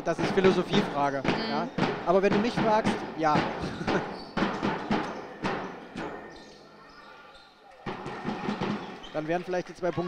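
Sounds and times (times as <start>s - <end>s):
basketball bouncing on hardwood: 0.2s - 6.5s, 7.8s - 9.2s.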